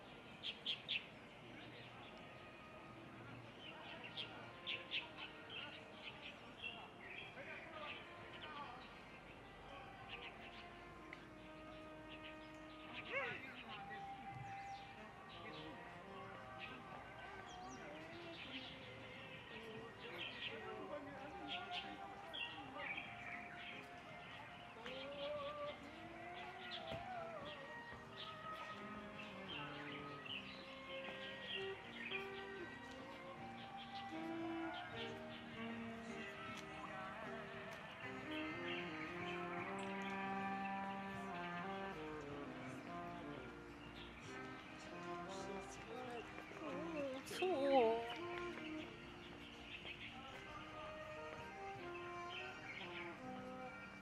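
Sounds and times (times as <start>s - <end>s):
faint distant voices: 0.0s - 54.0s
small birds chirping: 0.0s - 54.0s.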